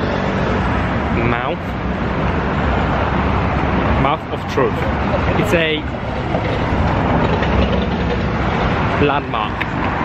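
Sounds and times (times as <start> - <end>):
city traffic rumble: 0.0 - 10.0.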